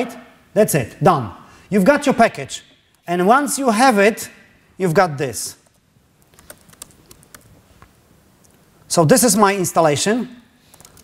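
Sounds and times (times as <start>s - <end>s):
typing on laptop keyboard: 5.6s - 7.5s, 10.7s - 11.0s.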